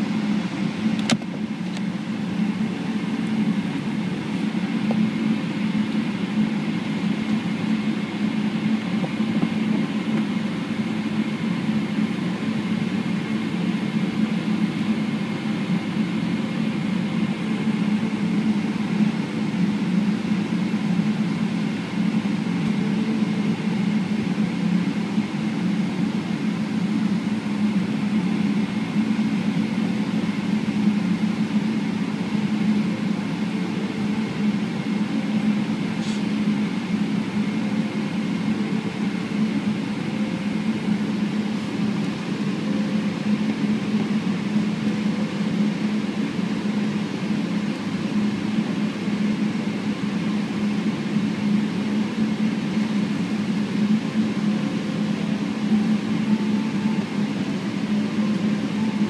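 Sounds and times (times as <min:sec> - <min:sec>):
airplane cabin hum: 0:00.0 - 0:59.0.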